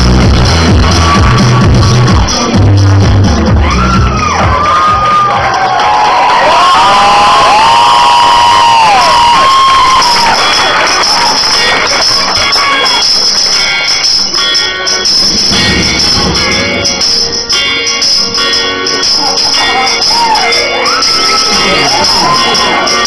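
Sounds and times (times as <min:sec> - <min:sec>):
audience cheering and whooping: 0:03.4 - 0:13.2, 0:19.4 - 0:23.0.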